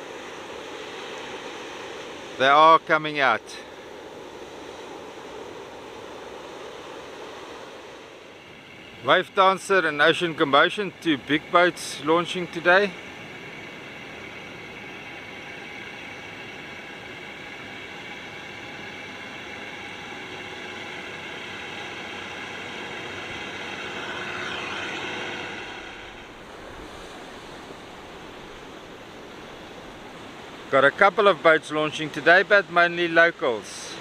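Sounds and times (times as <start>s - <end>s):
wind: 0.0s - 34.0s
tractor diesel engine: 16.2s - 34.0s
surf washing on beach: 23.2s - 34.0s.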